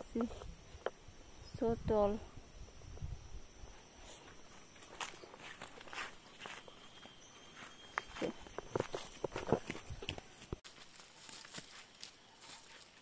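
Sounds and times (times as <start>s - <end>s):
footsteps crunching on dry leaves: 3.7s - 13.0s.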